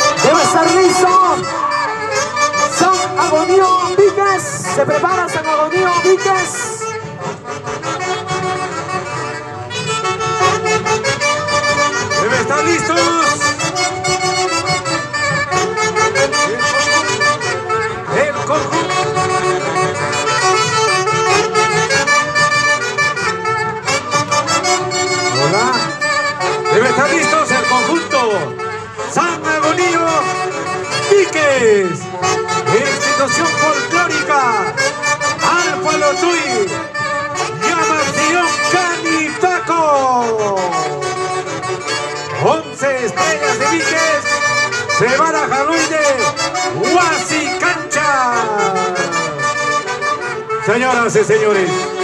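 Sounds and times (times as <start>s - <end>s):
folk band with saxophones: 0.0s - 52.0s
voices in music: 0.0s - 52.0s.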